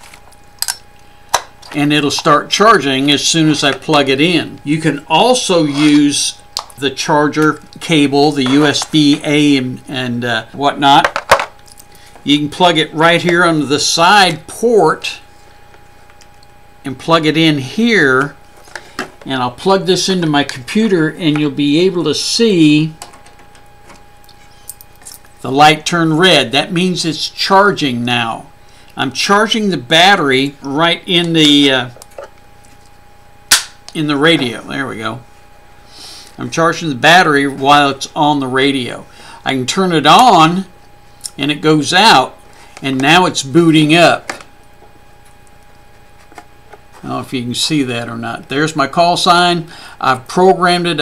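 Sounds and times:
low background hum: 0.0 - 51.0.

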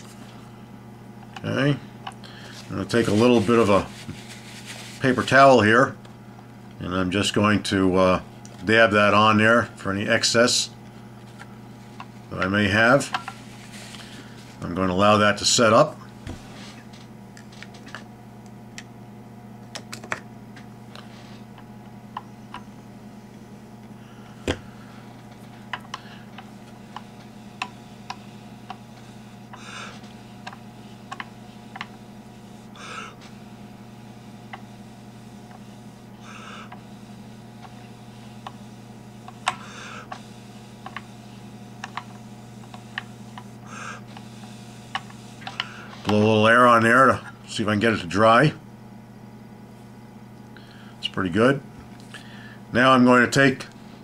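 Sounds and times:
low electrical hum: 0.0 - 54.0.

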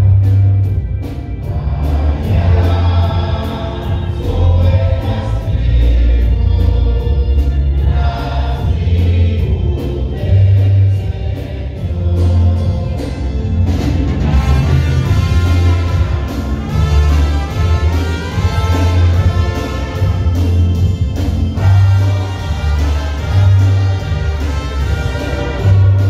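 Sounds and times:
choir singing a hymn: 0.0 - 26.0
deep bass line: 0.0 - 26.0
steady beat: 7.6 - 26.0.

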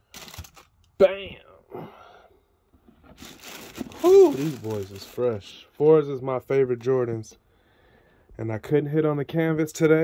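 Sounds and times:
tissue paper rustling: 0.1 - 0.7, 3.1 - 5.6.

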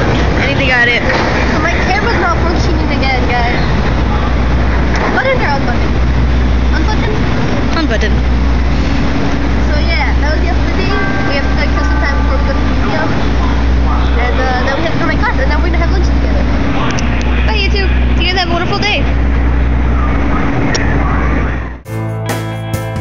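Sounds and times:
people's voices: 0.0 - 8.4, 9.0 - 21.8
traffic rumble: 0.0 - 21.8
music: 21.8 - 23.0.

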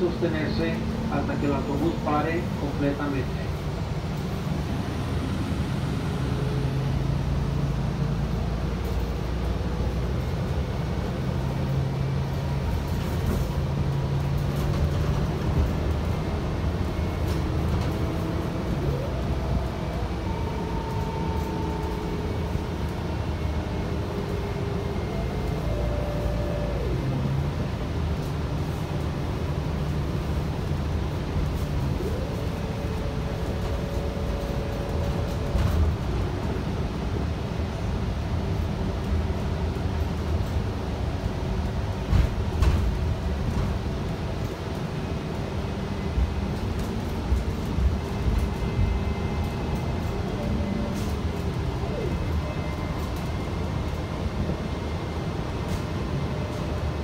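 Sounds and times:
bus engine and road rumble: 0.0 - 57.0
rising and falling whine: 3.9 - 7.8, 16.9 - 28.4.

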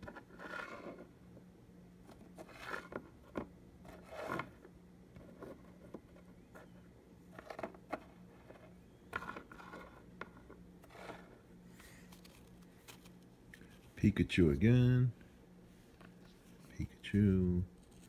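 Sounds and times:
cookies scraping on wooden table: 0.0 - 1.1, 2.4 - 3.1, 3.8 - 4.6, 7.4 - 11.4
faint steady hum: 0.0 - 18.0.

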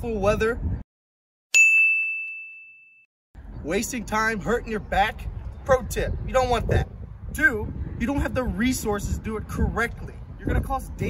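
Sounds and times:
bell-like ding: 1.5 - 3.1.

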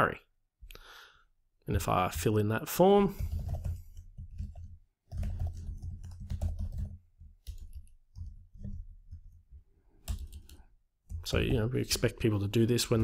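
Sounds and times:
typing on computer keyboard: 3.1 - 11.3.

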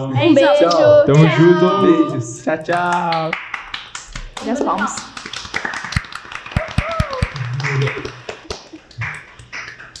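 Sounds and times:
people clapping: 2.6 - 10.0.

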